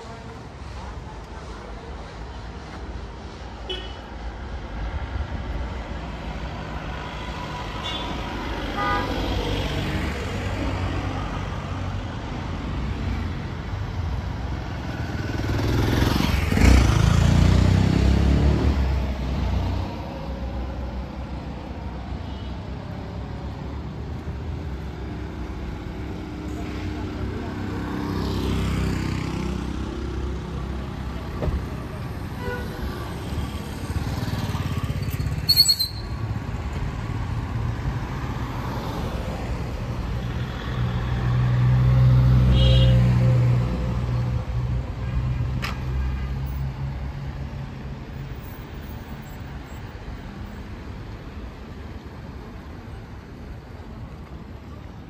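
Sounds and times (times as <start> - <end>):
cars passing: 0.0 - 55.0
motorcycle passing: 15.0 - 19.0.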